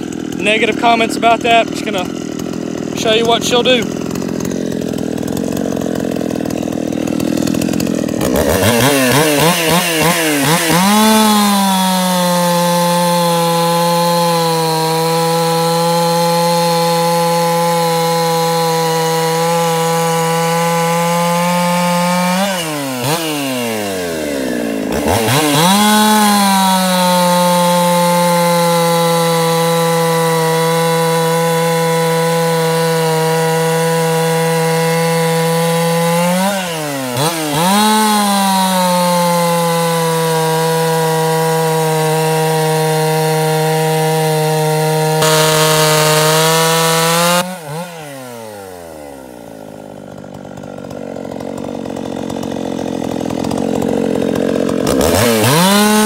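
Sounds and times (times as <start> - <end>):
chainsaw cutting wood: 0.0 - 56.0.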